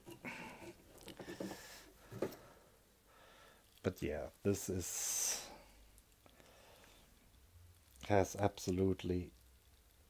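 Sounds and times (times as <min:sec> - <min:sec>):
faint handling sounds: 0:00.0 - 0:02.6, 0:03.6 - 0:10.0.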